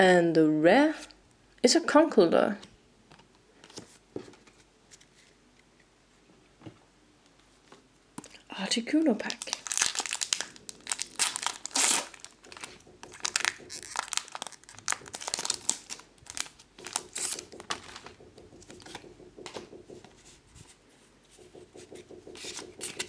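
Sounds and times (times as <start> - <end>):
foil wrapper tearing and crackling: 9.2 - 18.1
cards rustling: 9.3 - 23.0.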